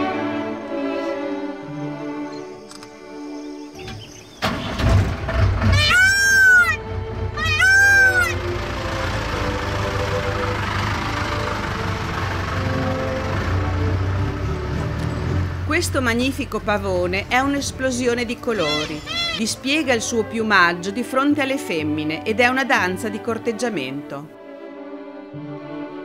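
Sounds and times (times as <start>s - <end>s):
string music: 0.0s - 26.0s
peafowl wailing calls: 5.6s - 8.5s, 18.5s - 19.5s.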